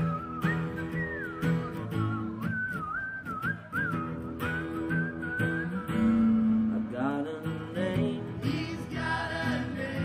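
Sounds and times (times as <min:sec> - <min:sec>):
person whistling a melody: 0:00.0 - 0:06.5
acoustic guitars strumming chords: 0:00.0 - 0:10.0.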